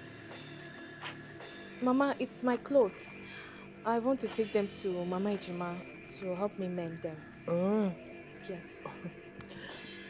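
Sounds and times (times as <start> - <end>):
film score music with held tones: 0.0 - 10.0
woman's voice: 1.8 - 7.3.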